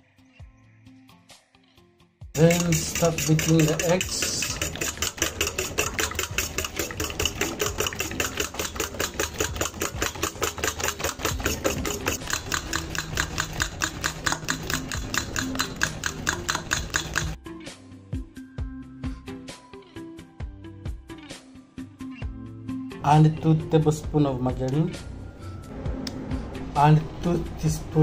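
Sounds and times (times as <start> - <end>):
background music: 0.0 - 28.0
whisk clicking in metal bowl: 2.4 - 17.4.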